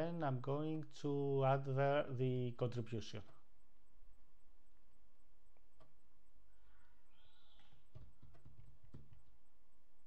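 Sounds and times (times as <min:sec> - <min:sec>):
hollow knocks and clicks: 0:07.6 - 0:09.3.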